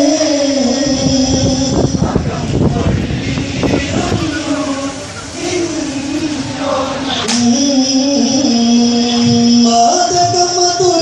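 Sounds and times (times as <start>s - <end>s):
men singing a long chanted note: 0.0s - 11.0s
sharp claps: 7.3s - 7.5s.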